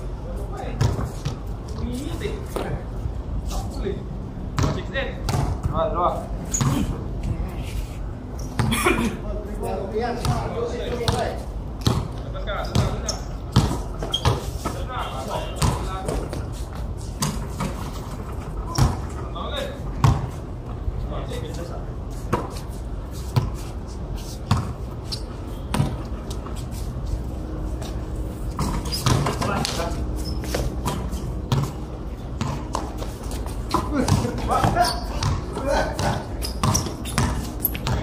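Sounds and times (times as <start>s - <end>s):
basketball bouncing on concrete: 0.7s - 2.0s, 4.5s - 6.9s, 10.2s - 14.8s, 15.5s - 16.5s, 18.7s - 19.2s, 20.0s - 20.4s, 24.4s - 24.8s, 25.7s - 26.1s, 28.5s - 29.7s, 30.4s - 31.8s, 32.4s - 38.0s
players calling out: 33.6s - 38.0s.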